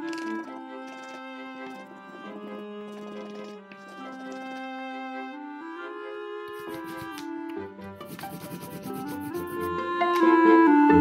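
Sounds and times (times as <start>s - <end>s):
background music: 0.0s - 11.0s
crayon rubbing on paper: 6.5s - 7.3s, 8.0s - 9.8s.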